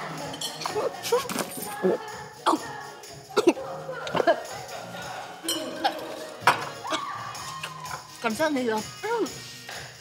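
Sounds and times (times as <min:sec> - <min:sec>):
murmur of voices: 0:00.0 - 0:08.4
glass clinking: 0:05.4 - 0:06.8.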